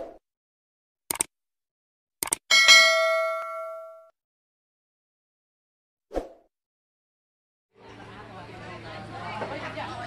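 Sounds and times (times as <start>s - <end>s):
quick clicks: 1.1s - 1.3s, 2.2s - 2.5s
bell-like notification chime: 2.5s - 4.1s.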